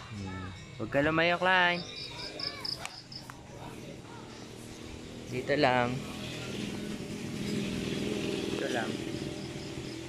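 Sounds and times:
insect chirping: 0.2 - 5.3, 6.1 - 10.0.

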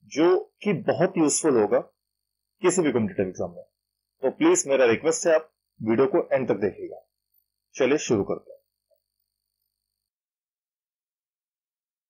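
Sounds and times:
faint steady hum: 0.0 - 10.1.

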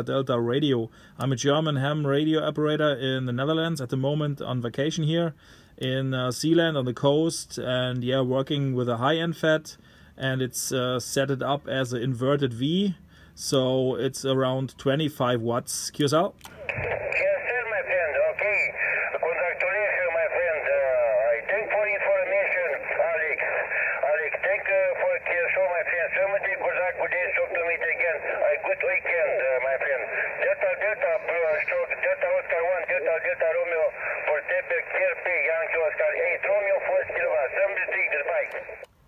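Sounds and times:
person talking over radio speaker: 16.5 - 38.9.

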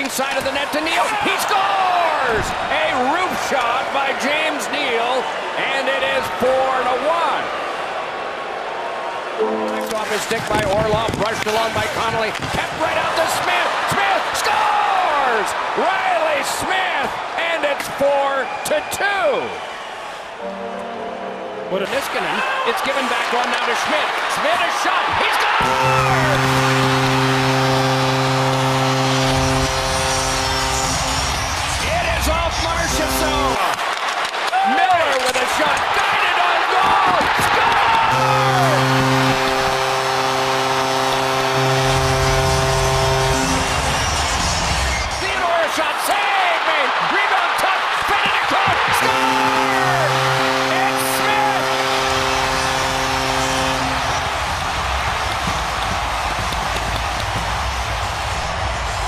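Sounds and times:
goal horn blaring: 9.4 - 13.8, 20.4 - 22.0, 25.2 - 33.8, 37.7 - 45.2, 48.6 - 58.3
crowd cheering and whooping: 22.1 - 39.5, 43.1 - 59.0.

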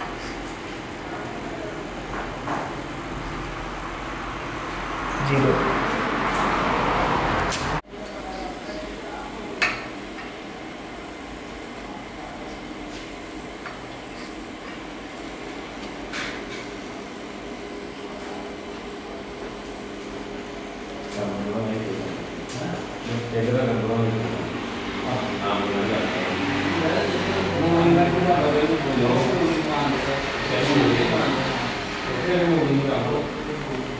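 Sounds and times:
low voices: 21.0 - 33.9.

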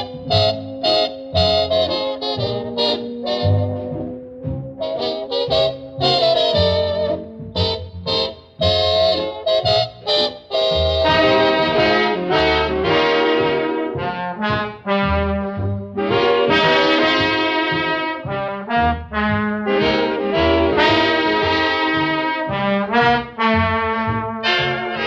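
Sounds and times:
swing big band with brass: 0.0 - 25.0.

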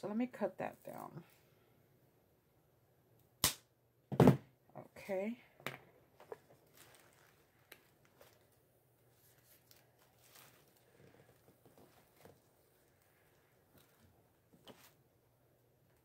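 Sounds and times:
tissue paper rustling: 6.4 - 15.0.

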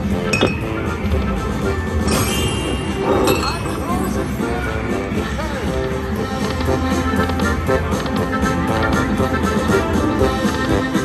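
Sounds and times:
electronic slot machine music: 0.0 - 11.0
glass clinking sound effect: 2.1 - 4.2.

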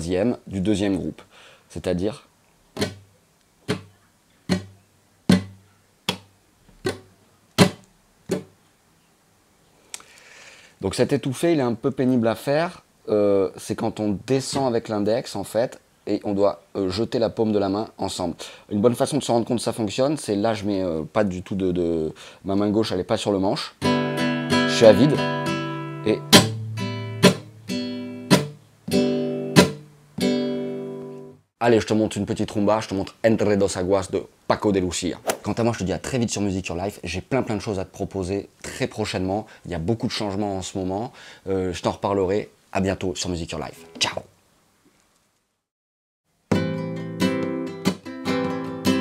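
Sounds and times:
muted nylon guitar strums: 2.8 - 3.1, 3.7 - 3.9, 4.5 - 8.6, 23.8 - 31.2, 46.5 - 49.0.

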